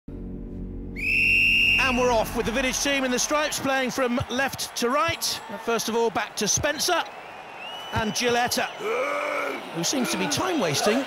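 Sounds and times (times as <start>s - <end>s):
referee's whistle long blast: 1.0s - 2.1s.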